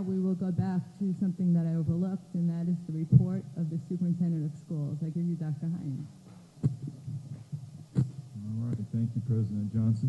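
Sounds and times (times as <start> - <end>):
microphone handling thumps: 3.1 - 3.4, 6.0 - 8.9.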